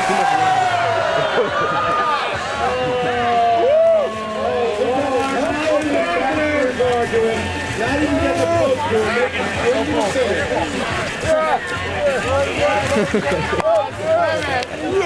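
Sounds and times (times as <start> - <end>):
crowd shouting and laughing: 0.0 - 15.0.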